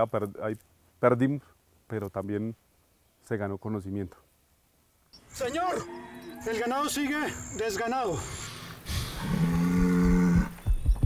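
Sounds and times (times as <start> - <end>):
cow mooing: 5.3 - 8.4, 9.0 - 10.6.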